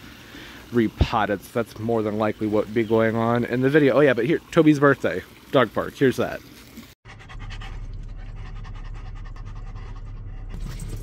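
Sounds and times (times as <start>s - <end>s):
dog panting rapidly: 7.1s - 11.0s.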